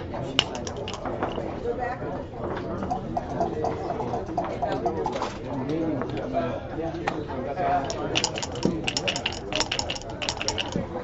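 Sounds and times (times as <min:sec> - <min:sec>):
murmur of voices: 0:00.0 - 0:11.0
game pieces clicking on board: 0:00.4 - 0:01.4, 0:07.9 - 0:10.8.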